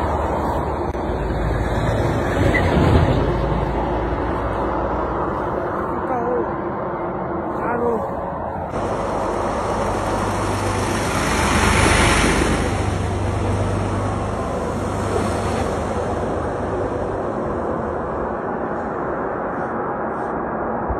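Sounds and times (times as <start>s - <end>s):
low rumble: 0.0s - 20.9s
road traffic: 0.0s - 20.9s
wind on microphone: 0.0s - 20.9s.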